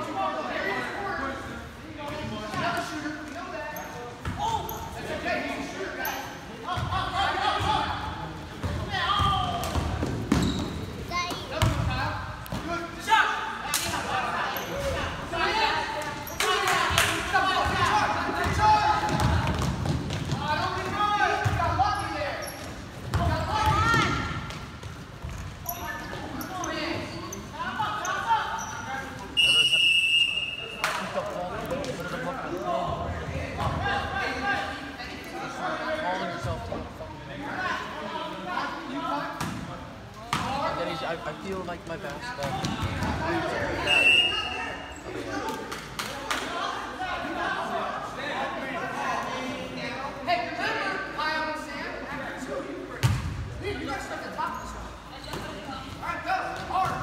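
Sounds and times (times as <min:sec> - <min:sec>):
people shouting in a gym: 0:04.4 - 0:19.7, 0:23.2 - 0:24.5
basketballs bouncing on gym floor: 0:08.6 - 0:12.7, 0:18.4 - 0:21.8, 0:22.6 - 0:26.2, 0:42.4 - 0:43.2
referee's whistle: 0:29.4 - 0:30.8, 0:43.8 - 0:44.9.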